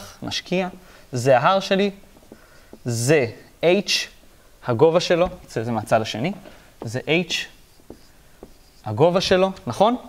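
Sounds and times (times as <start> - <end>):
marker pen on whiteboard: 0.0 - 10.0.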